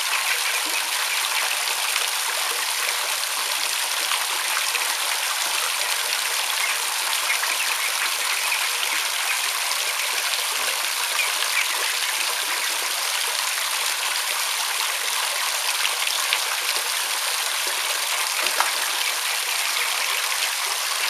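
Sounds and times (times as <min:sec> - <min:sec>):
shower spray splashing on water: 0:00.0 - 0:21.0.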